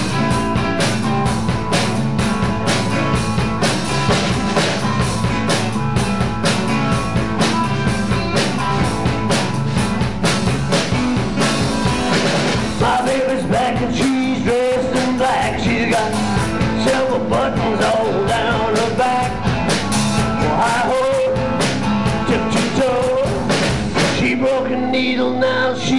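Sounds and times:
drum kit beat: 0.0 - 25.1
bass guitar: 0.0 - 25.9
electric guitars: 0.0 - 25.9.

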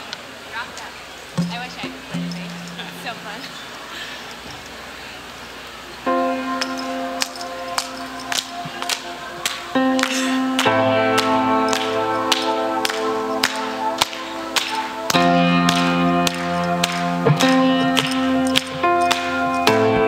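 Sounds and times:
congregation chatter: 0.8 - 20.0
sharp ticking: 1.4 - 3.6
low bass line: 1.4 - 3.8
band playing sustained chords: 1.4 - 4.4, 5.8 - 20.0.

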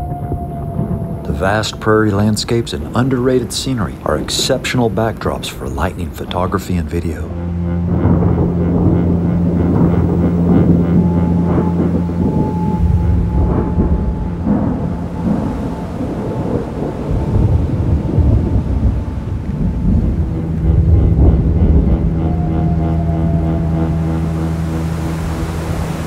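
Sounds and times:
low held music tone: 0.0 - 26.0
thunder rumbling: 0.0 - 26.0.

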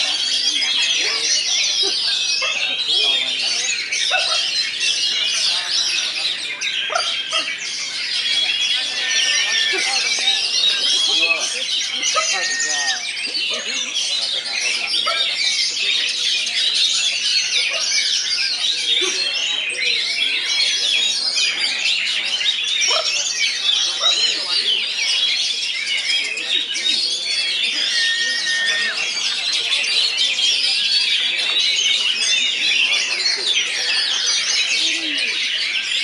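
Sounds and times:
songbirds singing chorus: 0.0 - 36.0.

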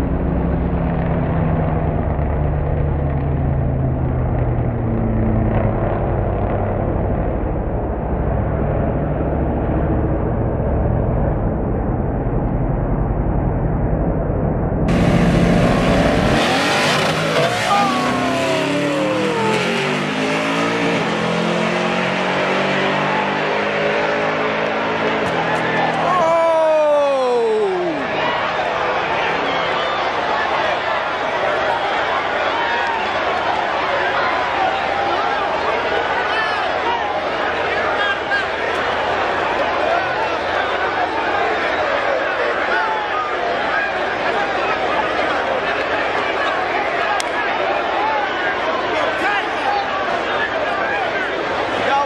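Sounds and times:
car engines revving: 0.0 - 52.0.

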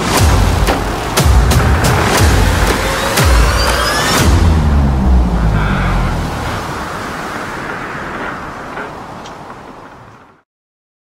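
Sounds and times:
rushing wind and surging water: 0.0 - 10.4.

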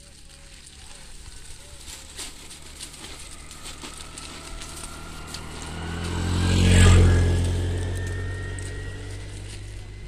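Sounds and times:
motorbike passing by: 0.1 - 10.0.

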